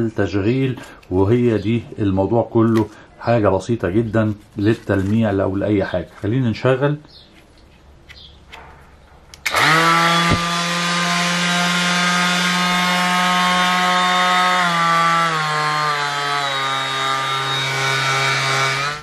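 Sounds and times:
orbit sander motor whine: 9.4 - 19.0.

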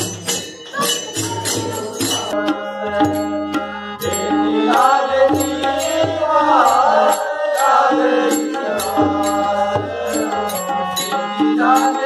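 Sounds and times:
voices chanting: 4.0 - 12.0.

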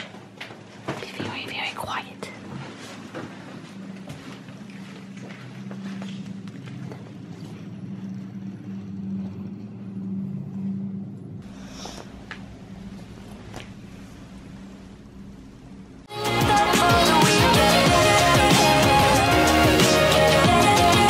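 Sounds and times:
steady low hum: 0.0 - 16.9
person whispering: 1.1 - 2.4.

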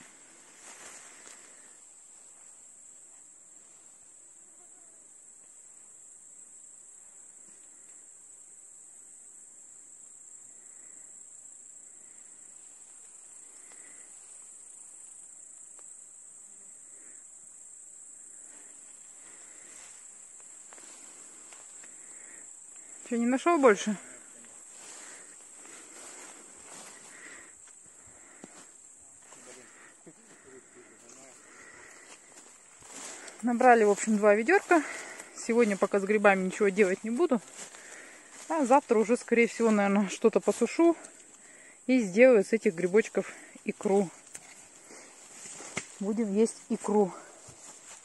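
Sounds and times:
grasshoppers chirring: 0.0 - 48.0
rustling: 30.6 - 41.7, 42.7 - 48.0.

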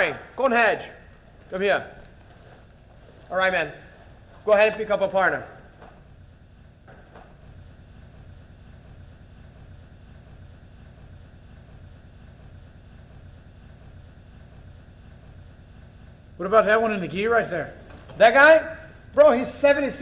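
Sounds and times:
low hum and hiss: 0.0 - 20.0.

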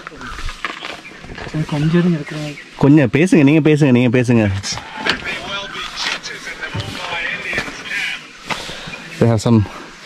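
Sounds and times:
people talking indistinctly: 1.3 - 10.0.

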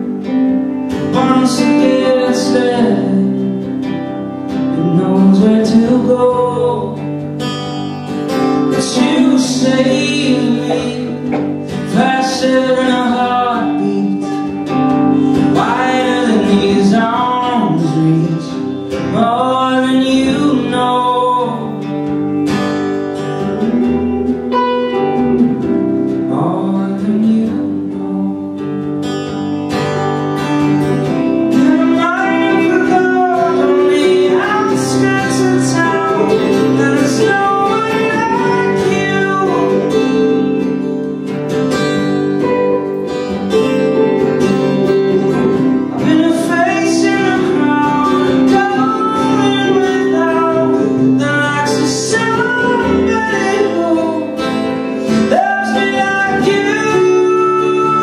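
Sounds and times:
electric guitar: 0.0 - 58.0
strummed acoustic guitar: 0.0 - 58.0.

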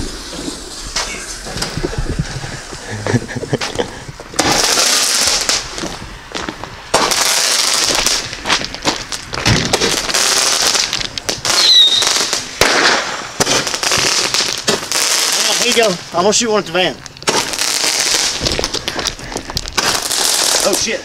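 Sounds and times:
fireworks hissing: 0.0 - 21.0
fireworks popping: 0.0 - 21.0
firework whistle: 11.5 - 13.2.

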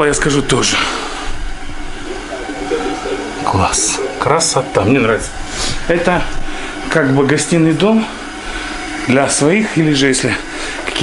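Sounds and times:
steady rushing noise: 2.1 - 5.5.

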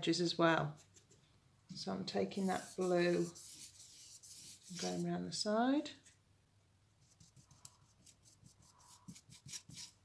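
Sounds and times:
paintbrush strokes on canvas: 2.2 - 5.2, 7.0 - 10.0.

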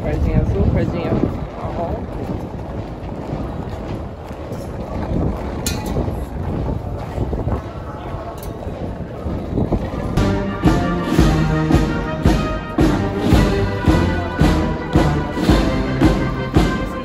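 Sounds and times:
wind rumbling on microphone: 0.0 - 10.3
murmur of crowd voices: 0.0 - 17.0.

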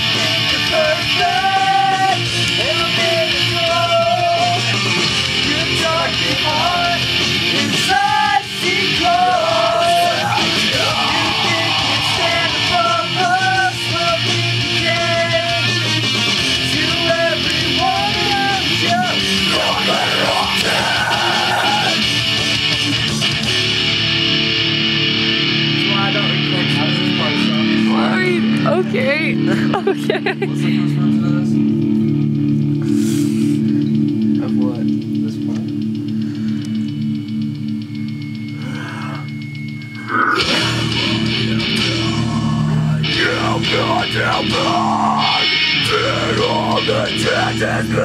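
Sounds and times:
rock song with loud guitar: 0.0 - 48.0
people singing along: 5.5 - 22.1, 40.3 - 48.0.

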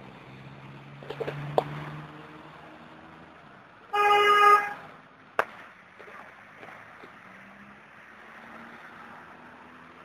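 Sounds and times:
car horn honking: 3.9 - 4.8.

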